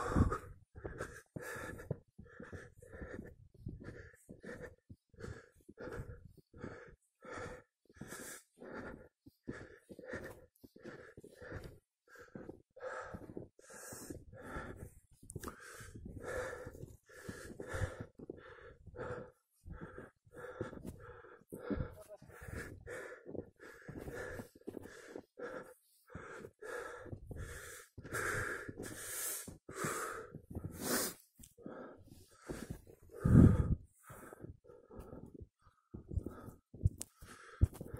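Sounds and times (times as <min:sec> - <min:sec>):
heavy laboured breathing: 0:00.0 - 0:37.9
person panting hard: 0:00.0 - 0:37.9.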